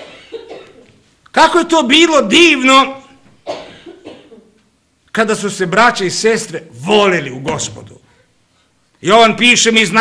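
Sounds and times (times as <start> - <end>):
person coughing: 0.0 - 1.0, 3.4 - 4.6
person preaching: 1.3 - 3.2, 5.1 - 8.2, 9.0 - 10.0.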